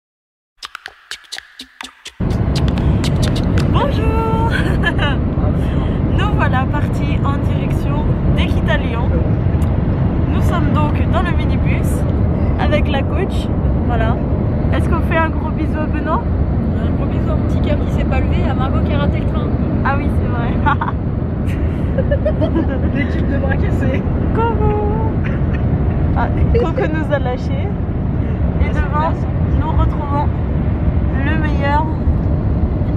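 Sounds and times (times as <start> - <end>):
low rumble of minibus driving: 2.1 - 32.9
passengers' voices: 22.2 - 27.6.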